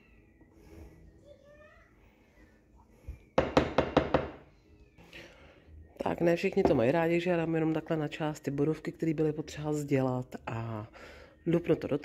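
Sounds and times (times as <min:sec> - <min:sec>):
wooden spoon knocking on dish: 0:03.4 - 0:04.4.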